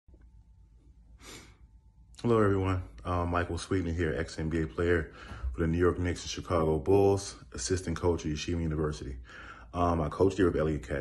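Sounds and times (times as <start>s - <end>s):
faint low room hum: 0.1s - 11.0s.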